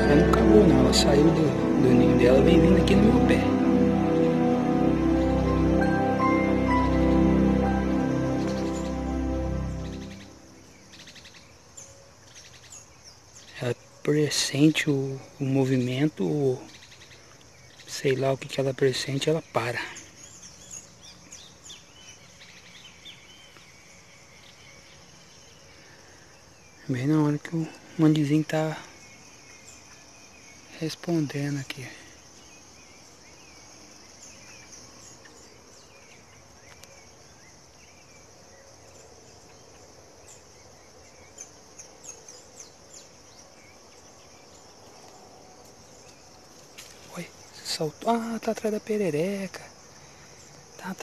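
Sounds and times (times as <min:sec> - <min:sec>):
high insect drone: 0:00.0 - 0:51.0
small birds chirping: 0:06.7 - 0:51.0.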